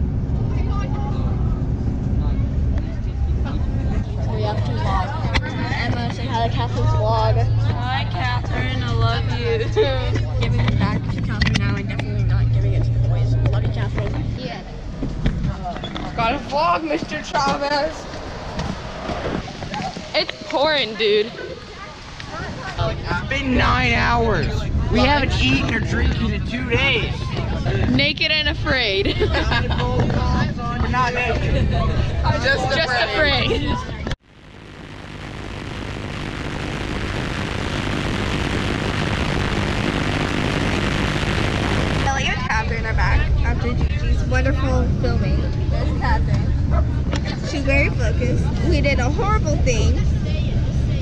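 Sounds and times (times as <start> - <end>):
faint voices: 0.3 - 34.2, 34.8 - 51.0
static-like rushing noise: 1.6 - 27.4, 34.2 - 44.4
heavy rain falling: 34.4 - 42.2.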